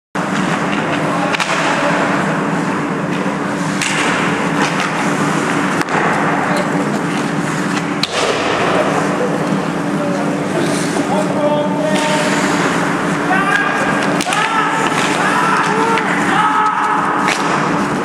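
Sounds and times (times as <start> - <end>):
hockey sticks and puck clacking: 0.2 - 9.9, 10.5 - 18.0
skate blades scraping ice: 11.8 - 13.1.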